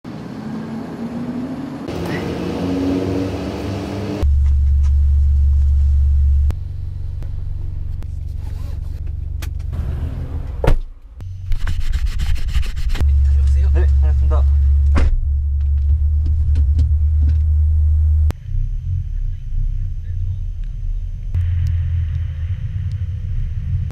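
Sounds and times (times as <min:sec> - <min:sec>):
car engine idling: 0:04.2 - 0:11.3.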